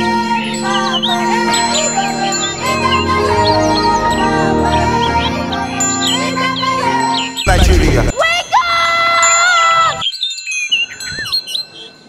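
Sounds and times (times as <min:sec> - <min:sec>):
high chime-like tones: 0:09.2 - 0:12.0.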